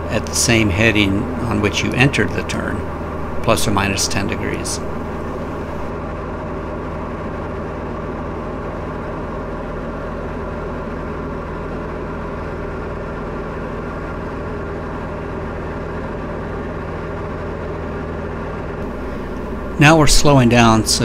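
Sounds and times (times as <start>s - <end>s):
aircraft engine and propeller droning: 0.0s - 14.5s, 18.7s - 21.0s.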